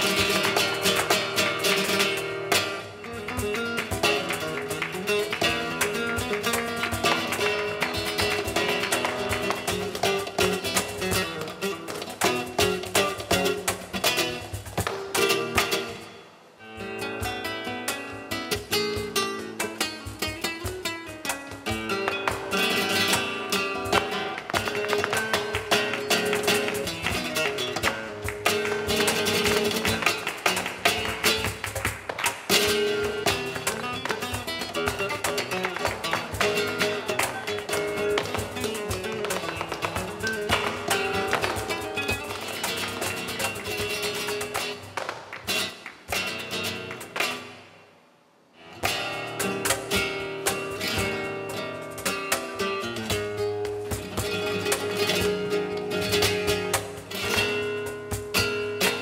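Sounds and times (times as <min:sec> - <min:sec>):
rapid percussive taps: 0:00.0 - 0:16.1, 0:17.1 - 0:47.7, 0:48.8 - 0:59.0
acoustic guitar: 0:00.0 - 0:59.0.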